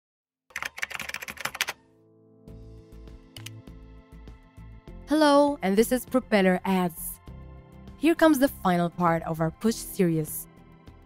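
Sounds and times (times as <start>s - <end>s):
computer keyboard typing: 0.5s - 1.8s, 3.4s - 3.6s.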